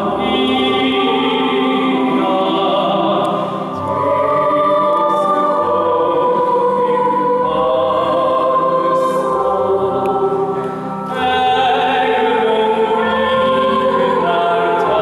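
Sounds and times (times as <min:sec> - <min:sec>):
youth choir singing: 0:00.0 - 0:15.0
man singing: 0:11.1 - 0:15.0.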